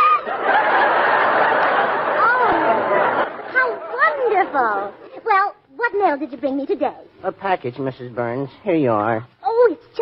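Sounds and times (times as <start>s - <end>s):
studio audience laughing: 0.0s - 5.1s
dialogue: 0.0s - 10.0s.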